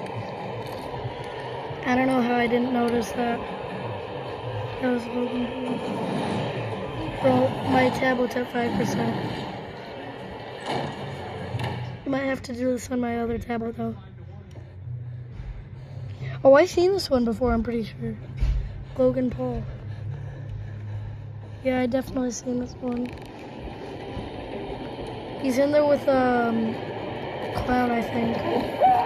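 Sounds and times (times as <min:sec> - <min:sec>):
film soundtrack through tablet speaker: 0:00.0 - 0:29.0.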